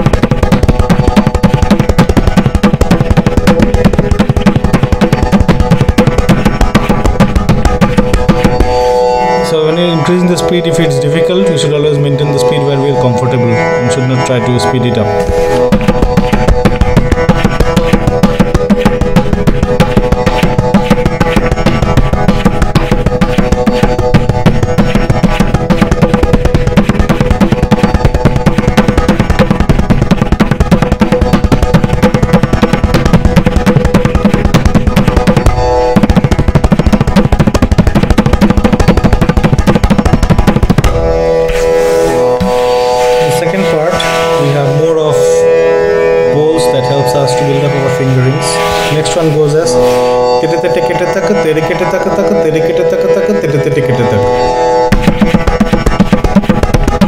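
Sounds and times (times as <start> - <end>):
steady pitched drone accompaniment: 0.0 - 57.0
tabla drumming: 0.0 - 57.0.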